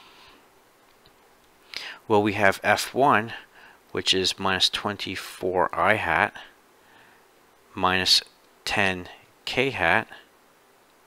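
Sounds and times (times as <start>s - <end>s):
man inhaling: 0.0s - 0.5s, 1.7s - 2.1s, 3.5s - 3.8s, 6.8s - 7.3s
recording hiss: 0.0s - 11.0s.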